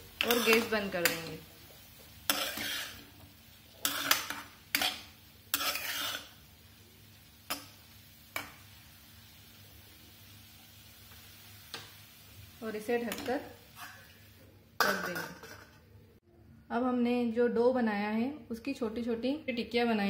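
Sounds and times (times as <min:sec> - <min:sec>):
metal spatula scraping frying pan: 0:00.2 - 0:01.3, 0:02.2 - 0:06.4, 0:13.1 - 0:14.2.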